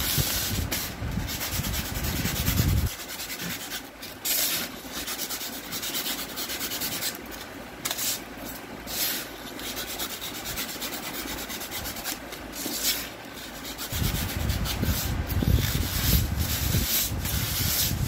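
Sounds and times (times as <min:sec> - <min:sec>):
blade scraping foam sheet: 0:00.0 - 0:18.0.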